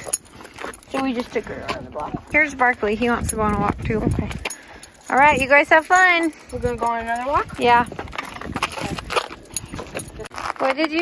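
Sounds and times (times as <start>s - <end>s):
footsteps on concrete: 0.0s - 11.0s.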